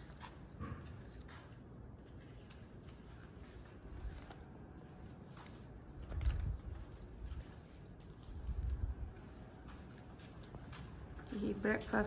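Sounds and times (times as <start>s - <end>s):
soft footsteps: 0.0s - 12.0s.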